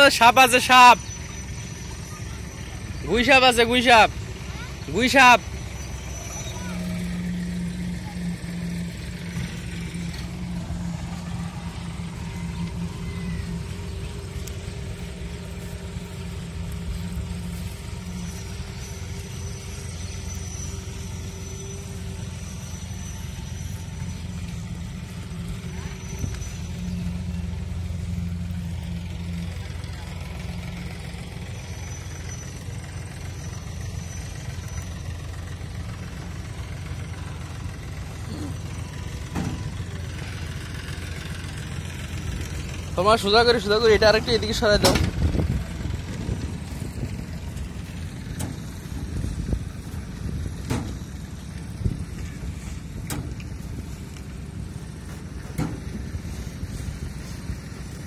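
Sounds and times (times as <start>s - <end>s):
engine running steadily: 0.0s - 58.0s.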